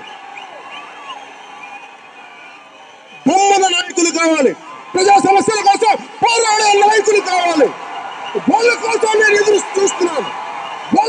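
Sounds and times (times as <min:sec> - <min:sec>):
crowd murmur: 0:00.0 - 0:05.0.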